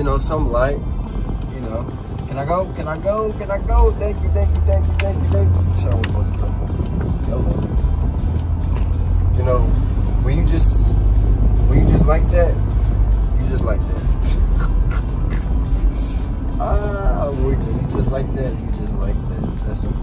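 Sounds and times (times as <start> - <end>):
music playing: 0.0 - 20.0
road noise: 0.0 - 20.0
van engine rumble: 0.0 - 20.0.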